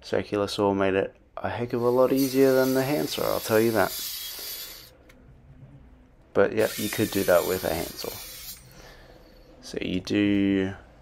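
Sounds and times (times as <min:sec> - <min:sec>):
steady hiss: 0:01.8 - 0:04.9.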